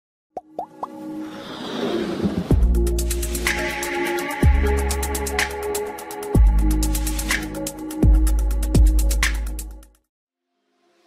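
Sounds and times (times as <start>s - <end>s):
rising plop sound effects: 0.4s - 1.0s.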